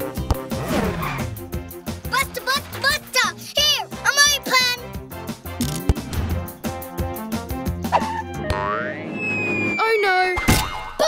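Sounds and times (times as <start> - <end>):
upbeat cartoon music: 0.0 - 10.2
downward sliding whistle tone: 8.4 - 10.9.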